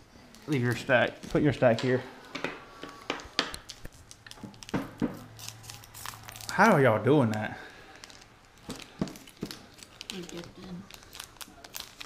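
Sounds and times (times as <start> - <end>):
foil pack tearing and crinkling: 3.6 - 12.0.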